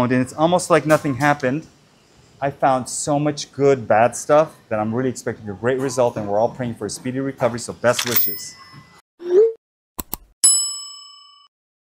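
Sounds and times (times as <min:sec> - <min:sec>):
bell ding: 0:08.1 - 0:09.0, 0:10.4 - 0:11.5.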